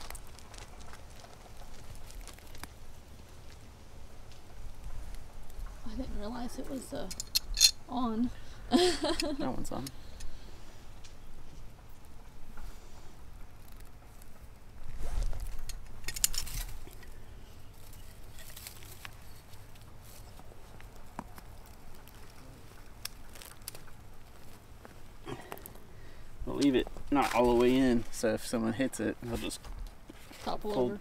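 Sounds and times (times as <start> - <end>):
gravel and dry leaves crunching: 0.0 - 6.0, 10.9 - 31.0.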